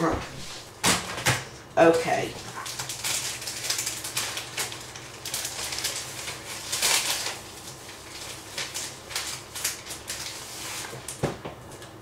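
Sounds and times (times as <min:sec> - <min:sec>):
paper rustling: 0:02.4 - 0:11.2.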